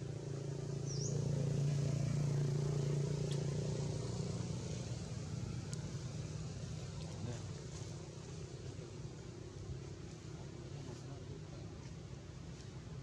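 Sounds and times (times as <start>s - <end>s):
vehicle engine passing: 0.0s - 11.0s.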